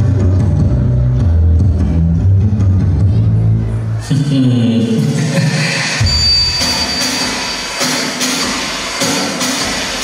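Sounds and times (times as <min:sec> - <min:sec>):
dance song with heavy bass: 0:03.3 - 0:10.0.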